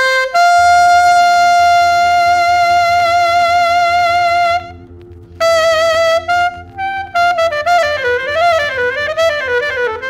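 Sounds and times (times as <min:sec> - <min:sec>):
low pulsing accompaniment: 0:00.0 - 0:10.0
wind instrument long high note: 0:00.0 - 0:10.0.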